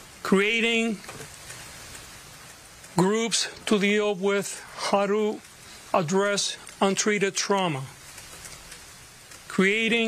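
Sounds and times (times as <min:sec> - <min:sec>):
room and microphone hiss: 0:00.0 - 0:10.0.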